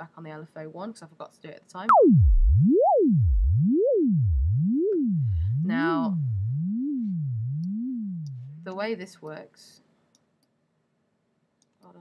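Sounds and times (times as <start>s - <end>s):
synthesizer note sweeping in pitch: 1.9s - 8.7s.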